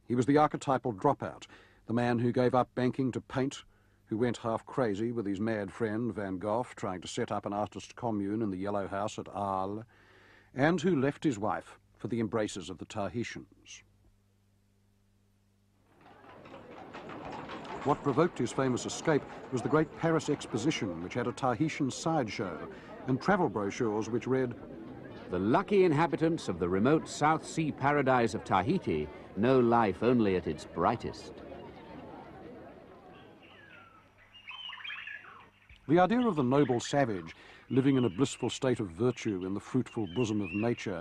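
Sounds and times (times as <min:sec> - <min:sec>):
street ambience: 0:15.8 - 0:41.0
birds chirping: 0:16.0 - 0:41.0
bird calls: 0:30.6 - 0:41.0.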